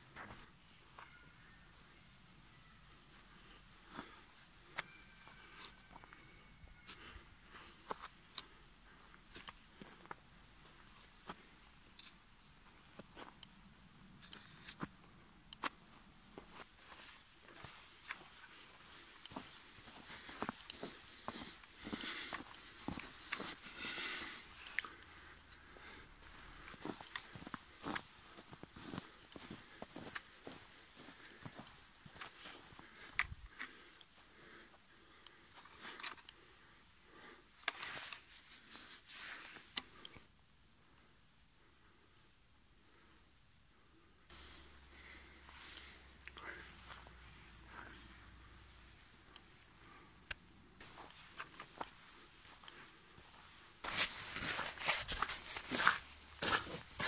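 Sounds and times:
footsteps crunching in snow: 16.4s - 24.8s, 26.2s - 32.9s, 50.8s - 57.0s.

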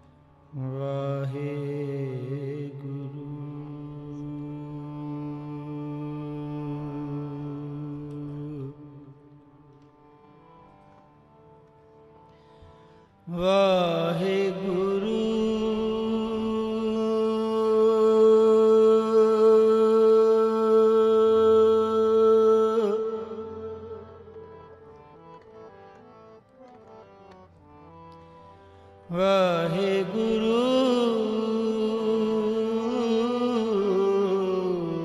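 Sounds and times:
harmonium drone: 0.0s - 35.0s
man singing: 0.6s - 9.5s, 13.3s - 24.4s, 29.1s - 35.0s.

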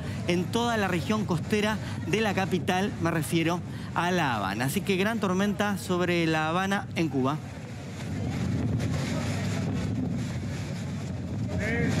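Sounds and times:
wind buffeting microphone: 6.8s - 12.0s.

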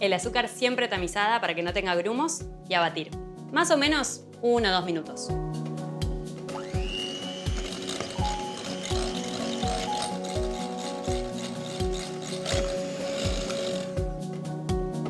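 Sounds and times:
background music with steady beat: 0.0s - 15.0s
electric hand mixer whirring: 6.5s - 14.2s.

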